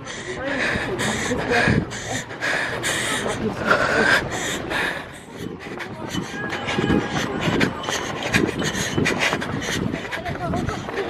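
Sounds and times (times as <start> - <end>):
camera rubbing while running: 5.4 - 11.0.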